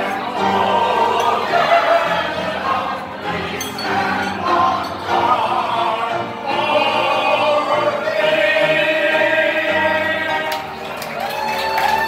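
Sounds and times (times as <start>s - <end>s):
crowd singing together: 0.0s - 11.2s
keyboard accompaniment: 0.0s - 12.0s.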